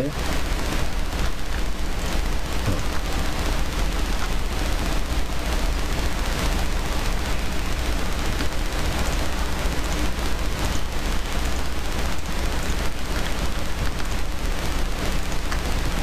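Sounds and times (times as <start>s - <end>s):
microphone hiss: 0.0s - 16.0s.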